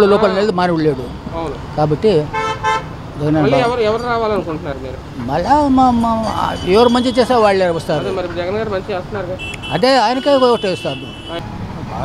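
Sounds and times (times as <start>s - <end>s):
vehicle horn toots: 2.3s - 2.9s, 6.0s - 8.4s, 9.4s - 11.4s.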